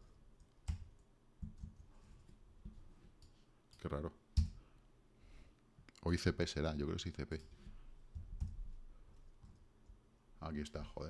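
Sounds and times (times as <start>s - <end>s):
computer keyboard keystrokes: 0.4s - 1.9s, 8.2s - 8.6s.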